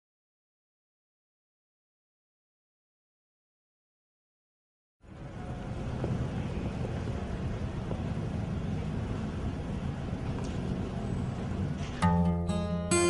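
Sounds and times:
street traffic ambience: 5.0 - 13.0.

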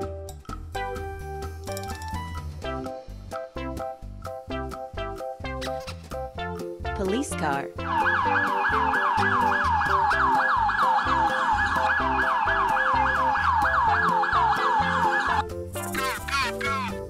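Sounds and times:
background music with beat: 0.0 - 7.2, 7.8 - 17.0
toy police siren warble: 7.9 - 16.6.

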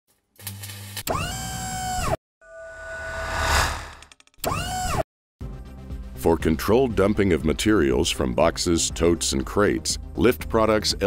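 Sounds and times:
motor whine rising in pitch: 1.1 - 5.0.

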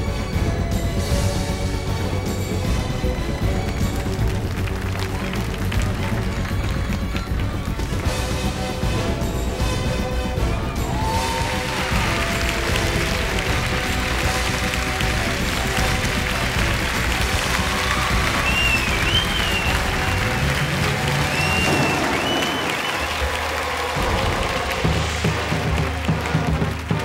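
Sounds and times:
audience applause: 0.0 - 27.0
slow instrumental music: 0.0 - 27.0
high wavering whistles: 17.6 - 23.6.

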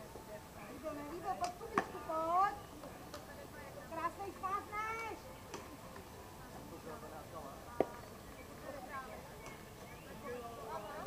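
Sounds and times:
softball striking with sharp knock: 1.4 - 2.0.

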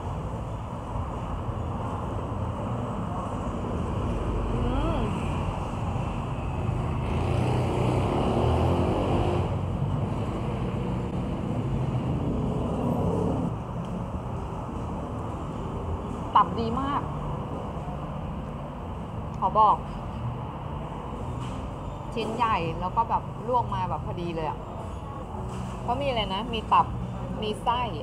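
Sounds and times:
road traffic rumble: 0.0 - 28.0.

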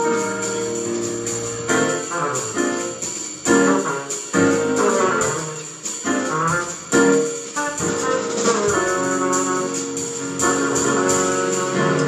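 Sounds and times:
drum kit: 0.0 - 12.0
keyboard: 0.0 - 12.0.

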